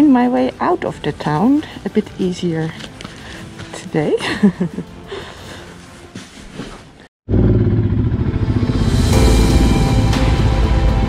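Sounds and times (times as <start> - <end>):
motorcycle engine running loud: 7.3 - 9.2.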